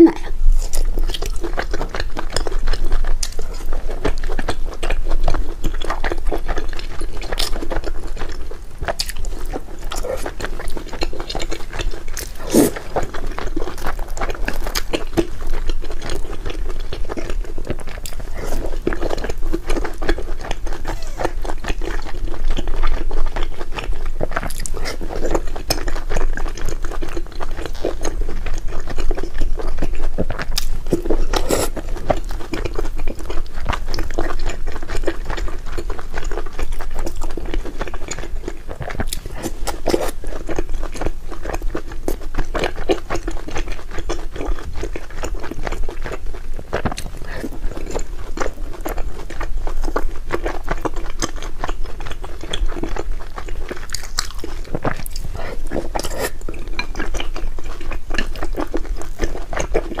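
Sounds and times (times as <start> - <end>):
chewing and biting sweets: 0.0 - 60.0.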